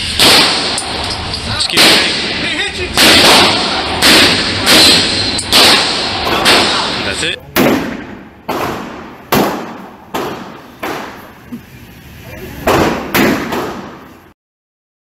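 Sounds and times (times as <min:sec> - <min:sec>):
revolver shots echoing: 0:00.0 - 0:11.4, 0:12.6 - 0:14.2.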